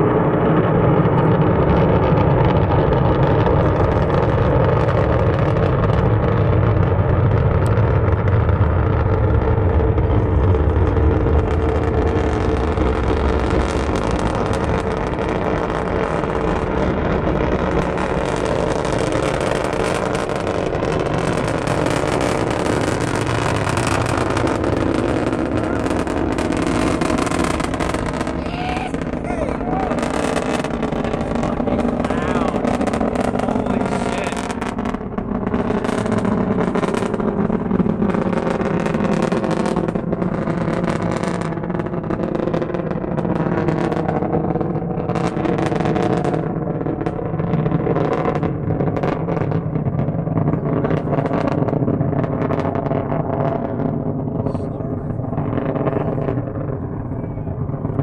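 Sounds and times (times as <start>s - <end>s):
distant rocket engine rumble: 0.0s - 58.0s.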